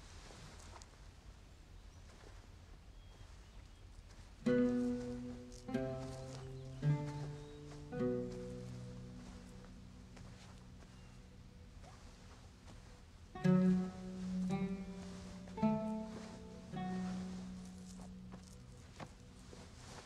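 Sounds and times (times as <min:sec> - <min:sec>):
soft string music: 0:04.4 - 0:20.0.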